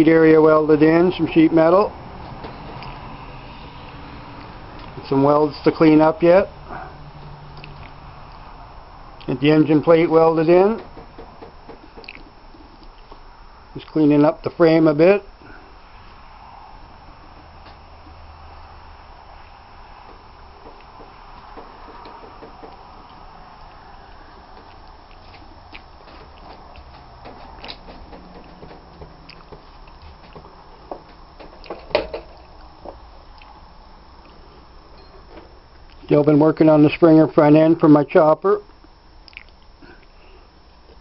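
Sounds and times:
faint room noise: 0:00.0 - 0:41.0
light clicks and knocks: 0:24.5 - 0:33.0.

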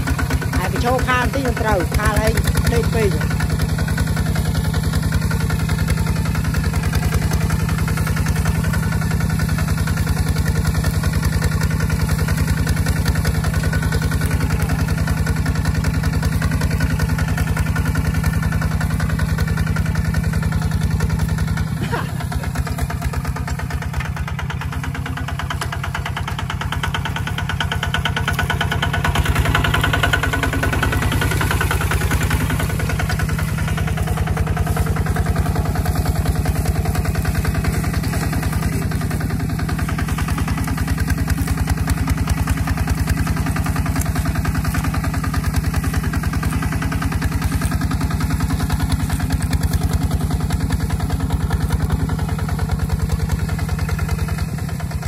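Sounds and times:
diesel engine running under load: 0:00.0 - 0:55.0.

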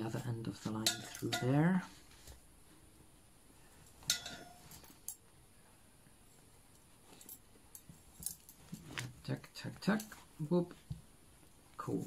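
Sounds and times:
metal pipes clinking together: 0:00.8 - 0:01.6, 0:04.0 - 0:05.2.

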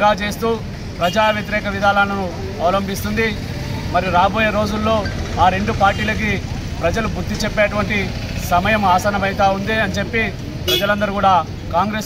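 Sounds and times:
man speaking forcefully: 0:00.0 - 0:12.0.

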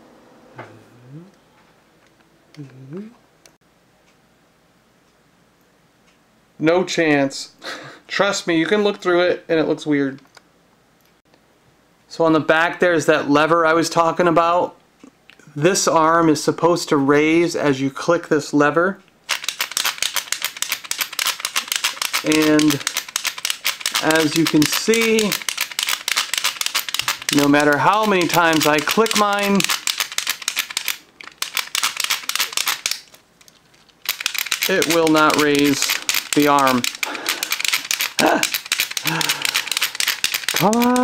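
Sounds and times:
plastic ratchet lever clicking: 0:19.3 - 0:33.1, 0:34.0 - 0:41.0.

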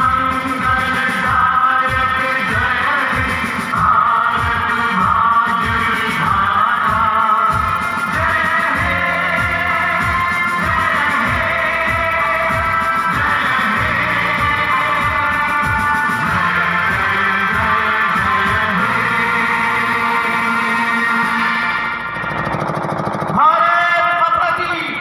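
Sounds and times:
song with singing and drum beat: 0:00.0 - 0:25.0.

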